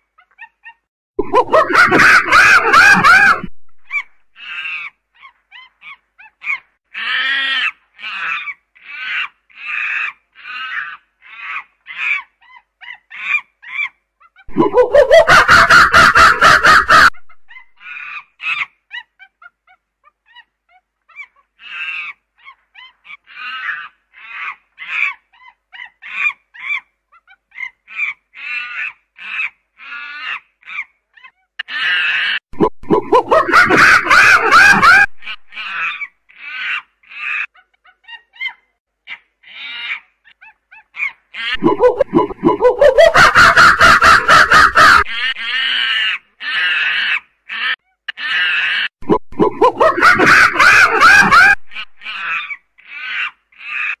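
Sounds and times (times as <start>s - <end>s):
chimpanzee screaming: 0.3s - 19.5s, 20.2s - 32.4s, 33.1s - 54.0s.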